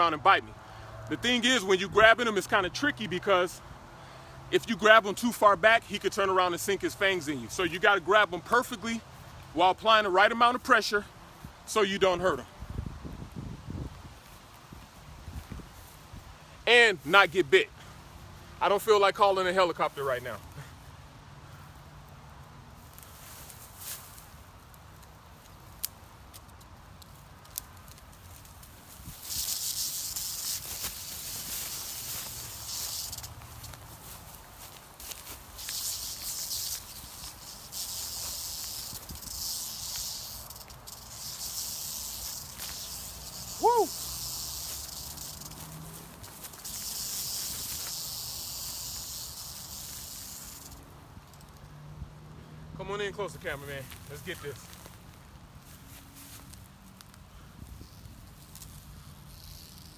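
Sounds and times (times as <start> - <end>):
rattlesnake rattle buzzing: 0.7 - 12.5, 22.7 - 52.0, 53.2 - 59.9.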